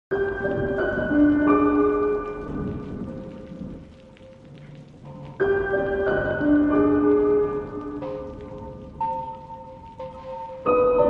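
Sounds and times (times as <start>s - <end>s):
low thunder rumble: 0.1s - 11.0s
rain falling: 0.1s - 11.0s.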